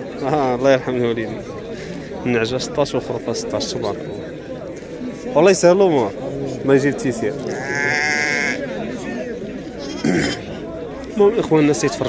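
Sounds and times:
crowd chatter: 0:00.0 - 0:12.0
sheep bleating: 0:07.4 - 0:08.6.

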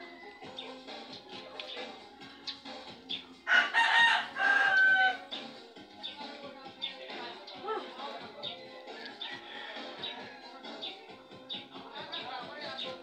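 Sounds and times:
faint background music: 0:00.0 - 0:13.0
rooster crowing: 0:03.5 - 0:05.3, 0:09.0 - 0:10.6.

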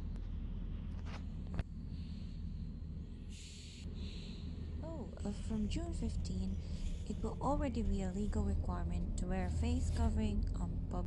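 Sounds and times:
train carriage hum: 0:00.0 - 0:11.0.

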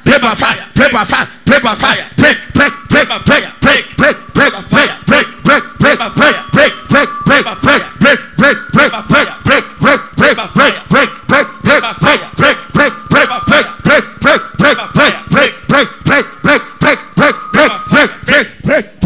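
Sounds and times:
man shouting into a microphone: 0:00.0 - 0:19.0.

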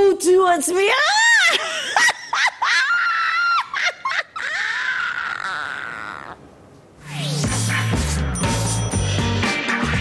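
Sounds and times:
woman shrieking: 0:01.0 - 0:06.4.

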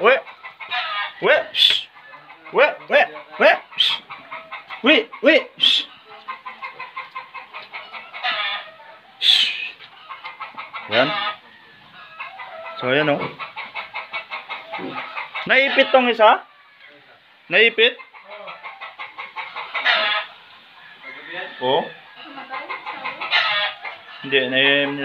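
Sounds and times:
piglets squealing: 0:00.2 - 0:11.4, 0:18.0 - 0:20.4, 0:22.5 - 0:24.3.

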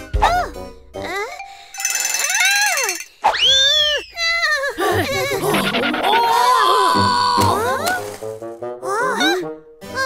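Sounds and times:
cartoon character screaming: 0:06.0 - 0:07.7.

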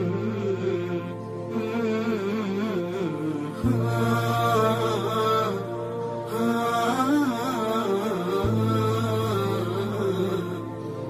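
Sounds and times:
steady low drone: 0:00.0 - 0:11.0
wavering chant-like vocal: 0:00.0 - 0:11.0.

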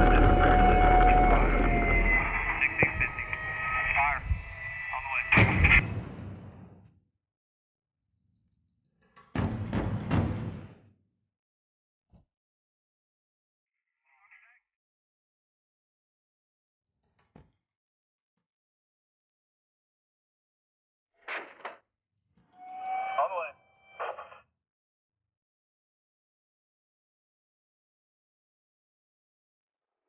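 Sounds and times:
radio crackle: 0:00.0 - 0:06.0, 0:24.0 - 0:24.4
radio tones and warble: 0:00.0 - 0:06.6, 0:22.7 - 0:24.4
rumble: 0:00.0 - 0:06.8.

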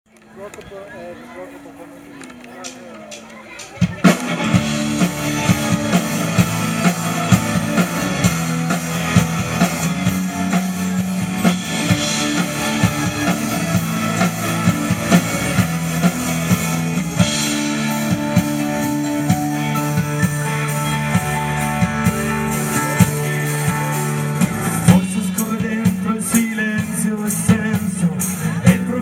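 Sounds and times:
pop-rock band playing: 0:02.7 - 0:29.0
drum kit beat: 0:03.1 - 0:29.0.

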